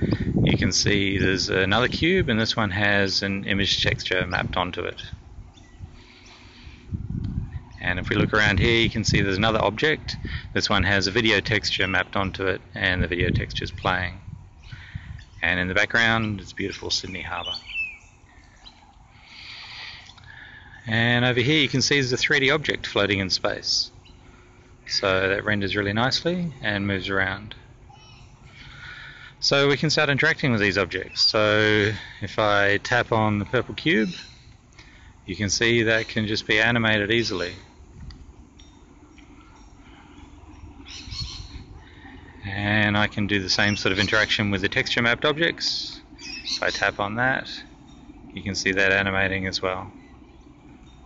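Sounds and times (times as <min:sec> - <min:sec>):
faint birdsong: 0:00.0 - 0:51.0
low steady rumble: 0:00.0 - 0:51.0
soft hiss: 0:00.0 - 0:51.0.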